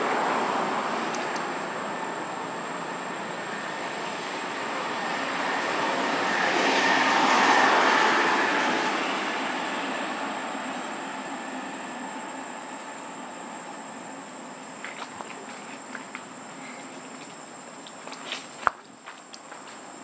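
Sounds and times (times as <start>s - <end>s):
vehicle passing: 0.0s - 10.5s.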